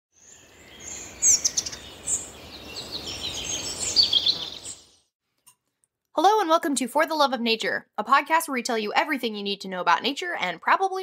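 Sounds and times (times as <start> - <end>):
birds chirping: 0.2 - 5.1.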